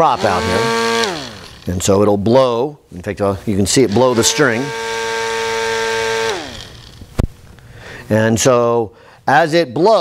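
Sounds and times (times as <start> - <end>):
small fan motor whining: 0.0 - 1.8, 3.8 - 7.3.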